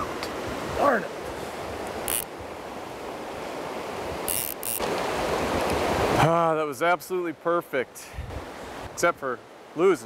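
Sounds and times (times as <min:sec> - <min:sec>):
river water rushing over rocks: 0:00.0 - 0:07.3.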